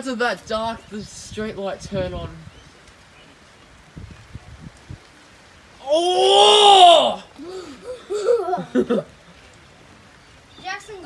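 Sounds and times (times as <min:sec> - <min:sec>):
faint outdoor noise: 0:00.0 - 0:11.0
person crying out: 0:05.8 - 0:08.7.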